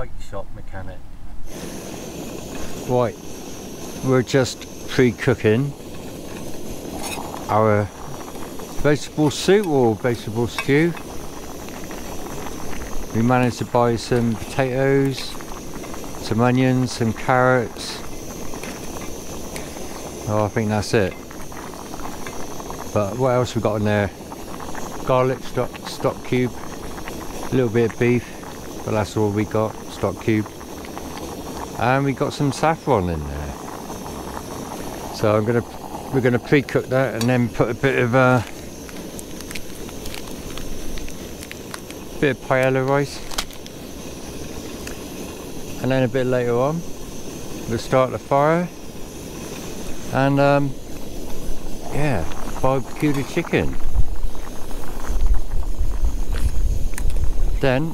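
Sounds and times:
camping stove burner hissing: 1.3 - 57.9
pot simmering: 1.4 - 57.9
small ticks: 38.4 - 43.7, 56.0 - 57.2.

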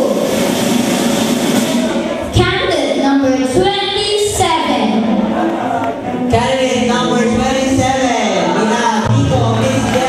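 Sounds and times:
crowd noise: 0.0 - 10.0
music with singing voice: 4.8 - 10.0.

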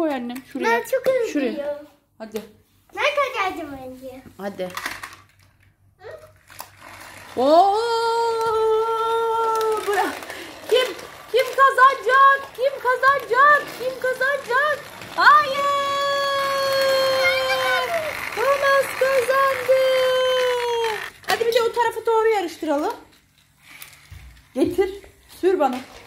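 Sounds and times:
child making train noises: 6.0 - 6.4, 7.4 - 21.2.

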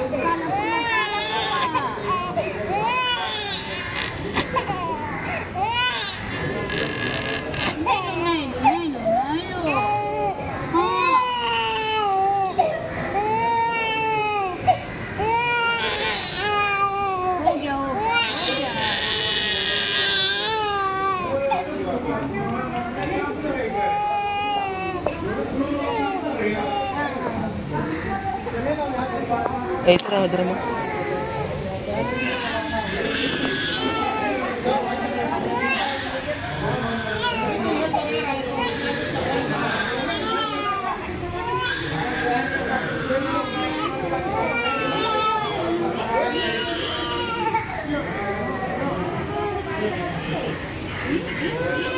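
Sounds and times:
chatter of adults and children: 0.0 - 51.9
infant crying: 0.2 - 8.9, 9.7 - 21.4, 30.5 - 34.8.

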